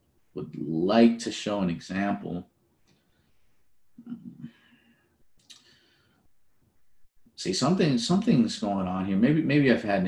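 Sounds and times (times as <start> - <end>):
man's voice murmuring: 4.0 - 4.5.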